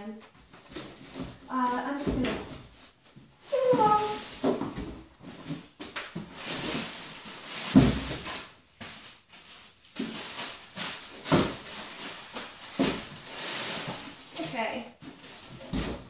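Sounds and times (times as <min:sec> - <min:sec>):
packaging and cardboard rustling: 0:00.2 - 0:16.0.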